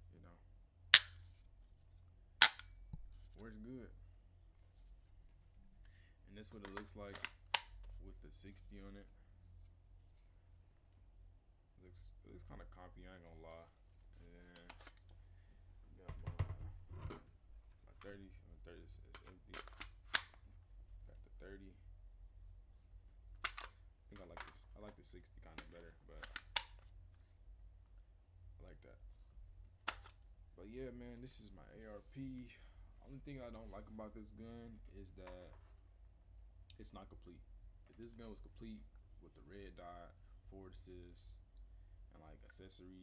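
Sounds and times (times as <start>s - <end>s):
metallic snaps of flip-up sight: 1.0s - 1.2s, 2.4s - 3.0s
magazine clicking into gun: 23.4s - 23.7s.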